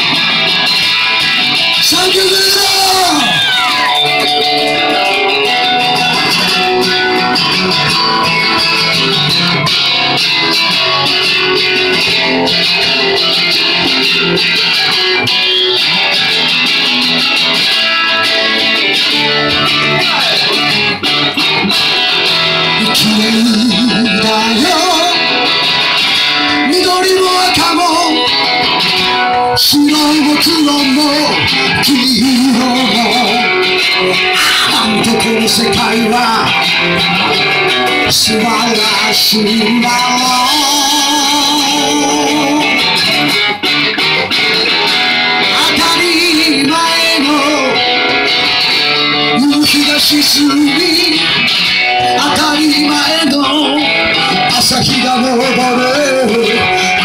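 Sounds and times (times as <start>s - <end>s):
live band music: 0.0s - 57.0s
strummed acoustic guitar: 0.0s - 57.0s
person singing: 1.6s - 57.0s.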